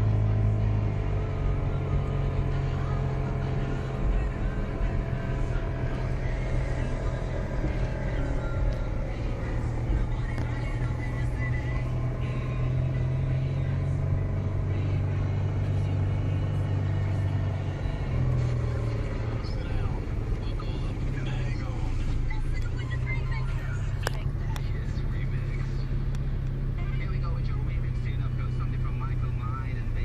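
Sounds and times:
car engine and road noise: 0.0s - 30.0s.

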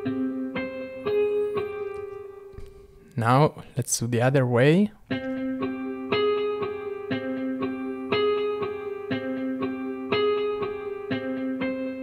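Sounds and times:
synth playing plucked melody: 0.0s - 2.7s, 5.1s - 12.0s.

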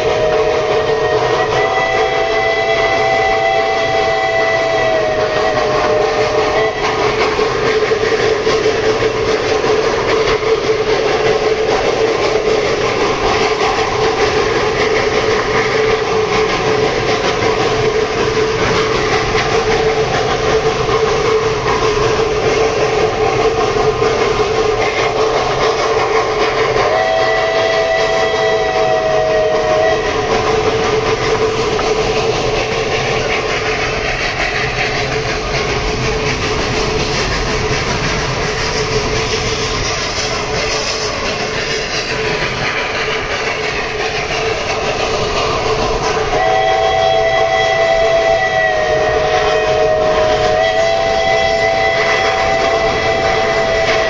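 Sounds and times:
steam whistle: 0.0s - 10.0s, 11.3s - 33.6s, 46.0s - 54.0s
train wheels clattering on rails: 0.0s - 54.0s.

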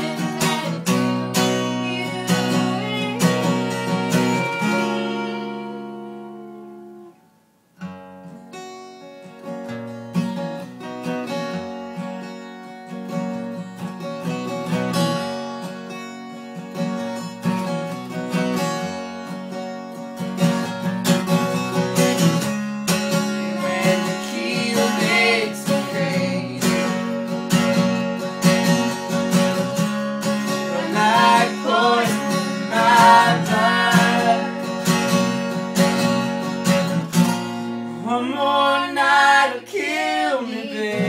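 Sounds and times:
person singing wavering melody: 0.0s - 6.2s, 30.7s - 34.8s
acoustic guitars strummed and picked: 0.0s - 41.0s.

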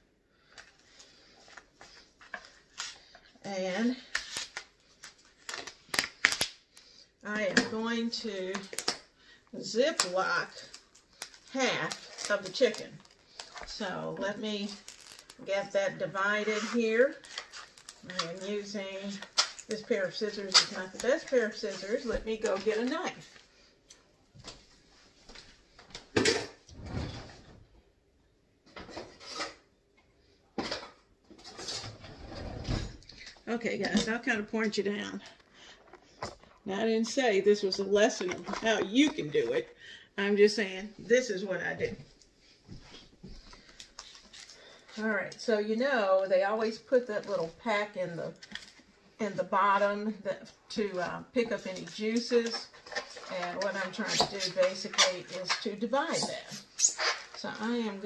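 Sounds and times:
kitchen drawer opening and shutting: 26.2s - 27.6s, 30.6s - 33.1s.

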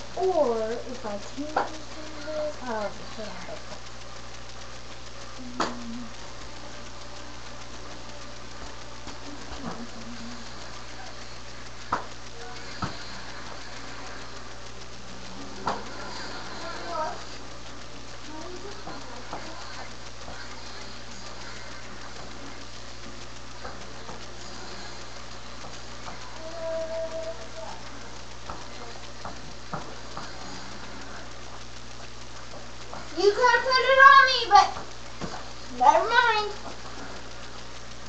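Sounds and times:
low electrical hum: 0.0s - 38.0s
steady hiss: 0.0s - 38.0s.

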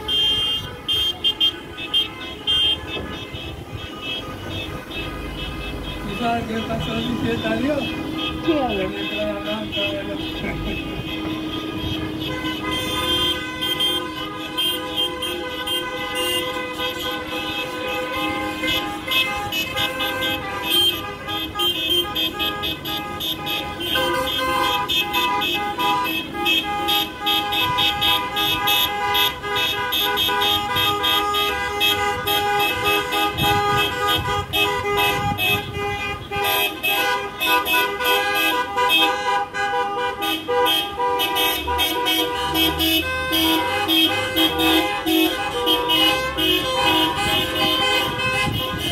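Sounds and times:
car engines: 0.0s - 48.9s
car horns honking: 0.0s - 48.9s.

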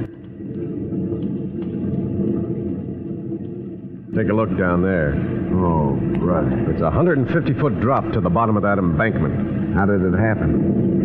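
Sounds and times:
low drone of held tones: 0.0s - 11.0s
dialogue: 4.1s - 10.7s.

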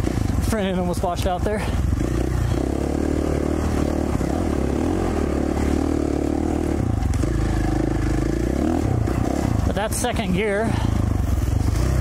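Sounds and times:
motorcycle engine running: 0.0s - 12.0s.

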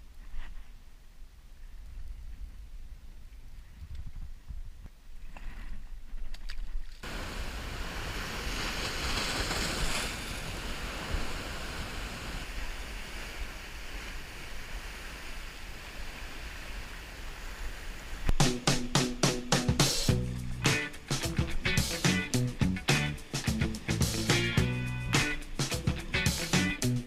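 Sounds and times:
wind rumble on microphone: 0.0s - 6.4s
sea waves breaking on rocks: 7.0s - 18.4s
music: 18.4s - 27.0s.

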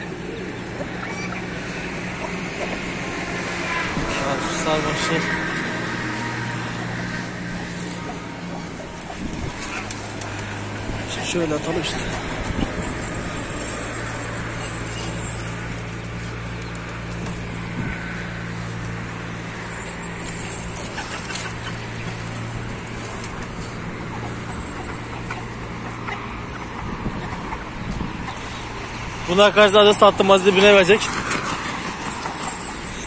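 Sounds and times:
low motor hum: 0.0s - 29.2s
outdoor background noise: 0.0s - 33.0s.

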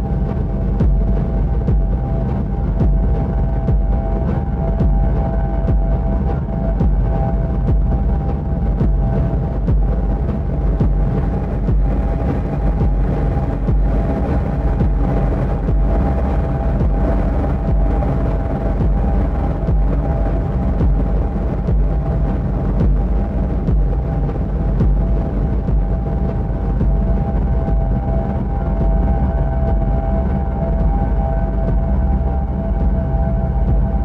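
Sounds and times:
electronic music low drone: 0.0s - 34.0s.

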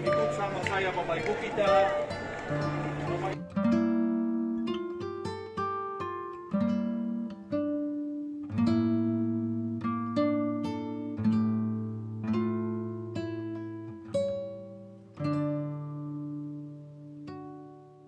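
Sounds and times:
acoustic guitar chords: 0.0s - 18.0s.

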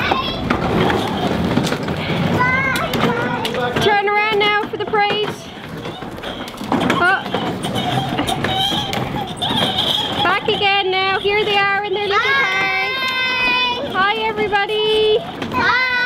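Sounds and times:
children calling out: 0.0s - 3.8s, 11.4s - 14.0s, 15.1s - 16.0s
toy car wheels rolling on paving: 0.0s - 16.0s.

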